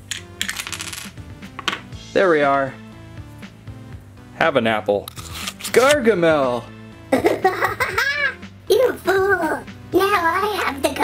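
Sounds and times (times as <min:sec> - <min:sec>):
plastic pieces clicking and clattering: 0:00.0 - 0:01.1
background music: 0:00.0 - 0:11.0.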